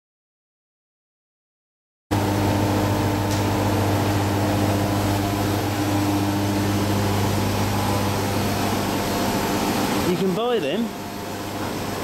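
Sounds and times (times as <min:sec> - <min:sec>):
steady low hum: 0:02.1 - 0:12.0.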